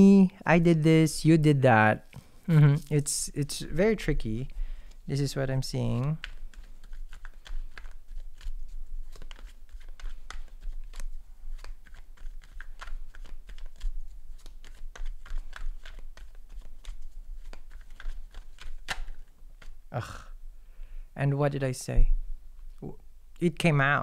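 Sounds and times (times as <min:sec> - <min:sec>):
cards being shuffled: 0:02.6 - 0:19.8.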